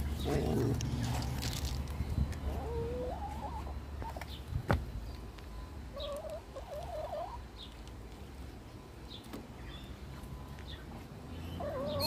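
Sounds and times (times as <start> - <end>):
wavering animal calls: 2.4 - 4.2, 11.5 - 12.0.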